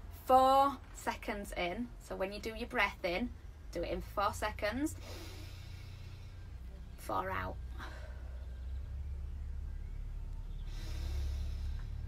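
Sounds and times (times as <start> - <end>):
steady low hum: 0.0 - 12.0
woman breathing in through nose: 5.0 - 6.7, 10.6 - 12.0.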